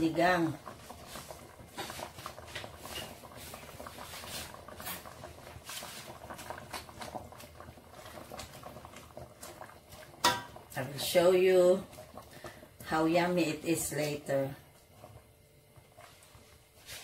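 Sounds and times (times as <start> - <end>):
soup simmering in a pot: 0.0 - 17.0
popping and crackling: 0.7 - 10.8.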